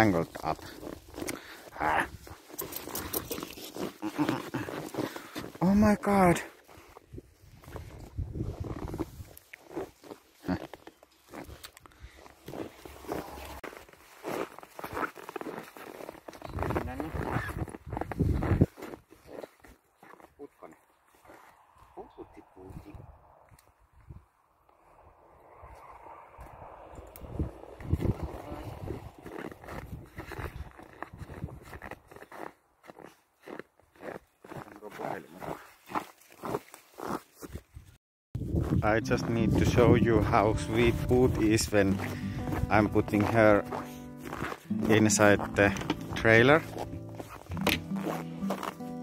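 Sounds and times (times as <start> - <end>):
footsteps in snow: 0.0 - 22.9, 27.5 - 49.0.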